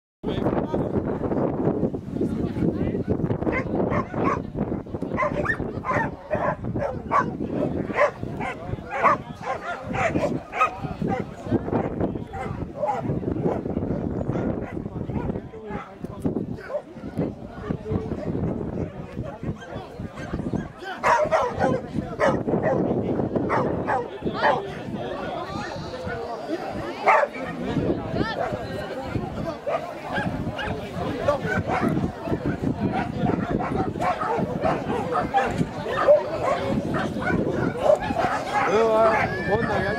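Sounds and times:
voices: 0:00.3 - 0:39.9
dog barking: 0:03.5 - 0:04.4, 0:05.2 - 0:13.6, 0:14.3 - 0:16.0, 0:18.2 - 0:22.9, 0:23.5 - 0:24.6, 0:27.0 - 0:27.6, 0:29.7 - 0:39.3.

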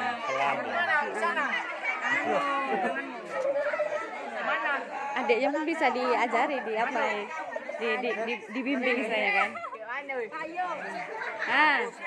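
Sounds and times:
young voices chattering: 0:00.0 - 0:12.0.

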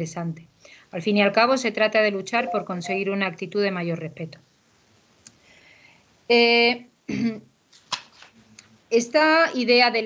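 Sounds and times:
woman speaking: 0:00.0 - 0:04.4, 0:06.3 - 0:07.4, 0:08.9 - 0:10.0
woman clearing her throat: 0:07.1 - 0:07.5.

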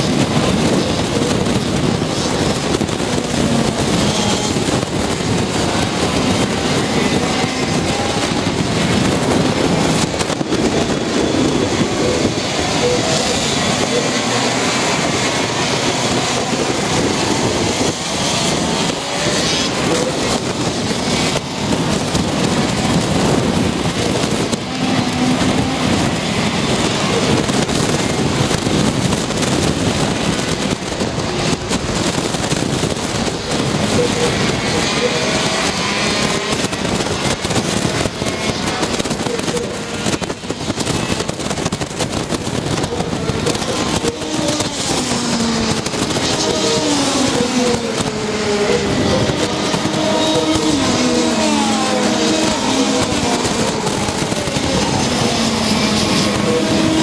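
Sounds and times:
racing kart engines: 0:00.0 - 0:57.0.

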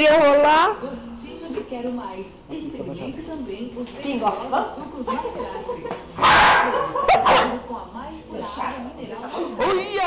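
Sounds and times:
dog barking: 0:06.2 - 0:07.6.

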